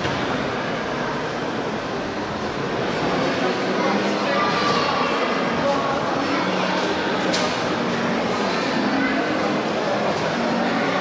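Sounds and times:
workshop hall background noise: 0:00.0 - 0:11.0.

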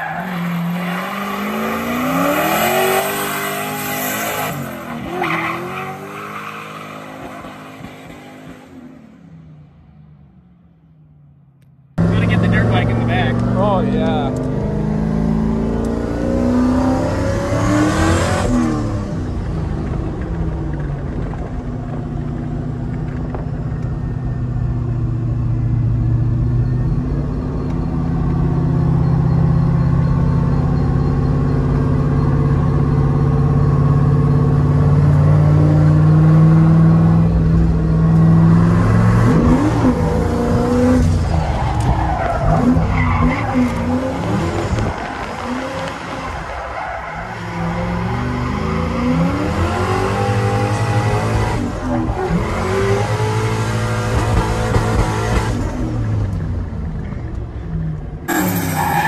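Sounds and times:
truck engine droning: 0:12.0 - 0:15.9
engine revving: 0:12.0 - 0:19.1, 0:47.4 - 0:56.3.

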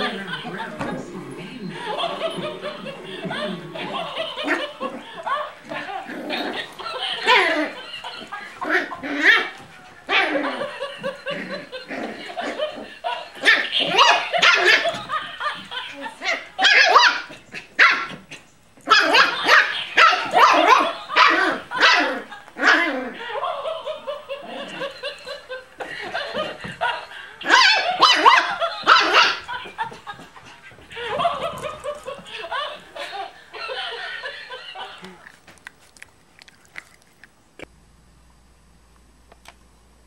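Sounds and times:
toy dog barking and laughing: 0:18.9 - 0:25.5.

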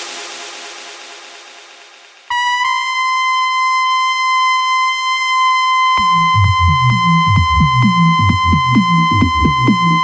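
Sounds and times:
held bright synthesizer note: 0:02.3 - 0:10.0.

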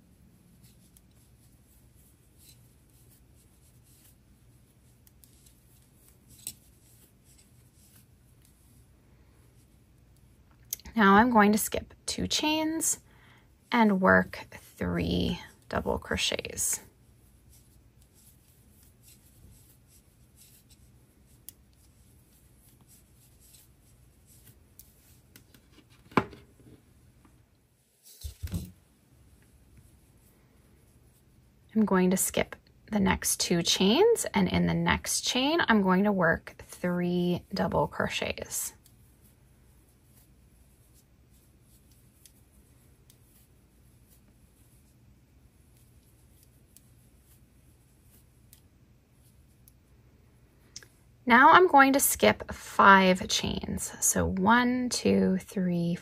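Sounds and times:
yarn rustling: 0:00.0 - 0:11.6, 0:13.6 - 0:27.0, 0:27.7 - 0:31.6, 0:36.8 - 0:49.8.

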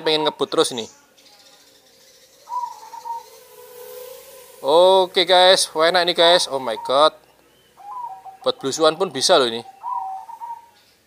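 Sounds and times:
bird cooing: 0:01.5 - 0:10.8.

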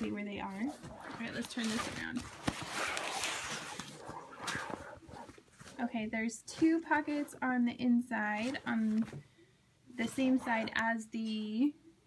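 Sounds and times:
cloth rustling and scraping: 0:00.0 - 0:09.2, 0:10.0 - 0:10.9
packing paper crinkling: 0:00.8 - 0:05.8.

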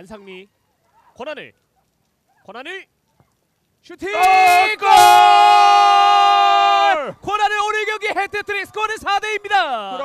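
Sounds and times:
commentator shouting: 0:04.0 - 0:10.0.

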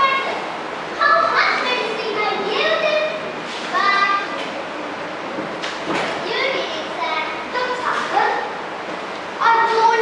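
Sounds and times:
children speaking: 0:00.0 - 0:08.6, 0:09.3 - 0:10.0.

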